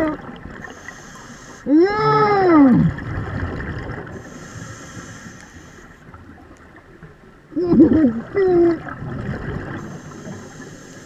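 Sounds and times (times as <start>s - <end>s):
underwater bubbling and gurgling: 0.0s - 11.0s.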